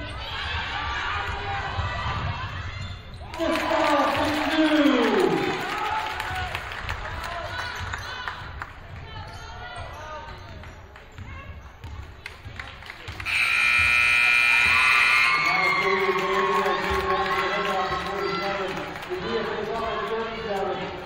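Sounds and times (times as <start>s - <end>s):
basketball shoes squeaking: 13.3s - 15.2s
scoreboard buzzer: 13.3s - 15.5s.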